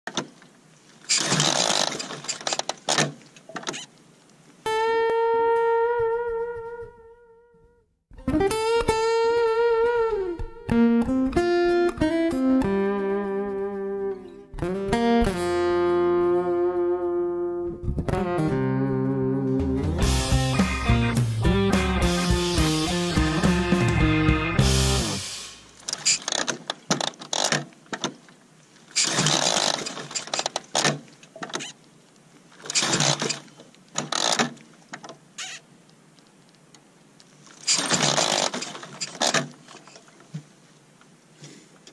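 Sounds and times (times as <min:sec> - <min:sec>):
crackling noise: 0:00.1 - 0:41.9
guitar holding notes with vibrato: 0:04.7 - 0:07.5, 0:08.1 - 0:25.7
guitar melody picked note by note: 0:04.7 - 0:07.5, 0:08.2 - 0:25.5
rush of mechanical noise: 0:22.4 - 0:25.8.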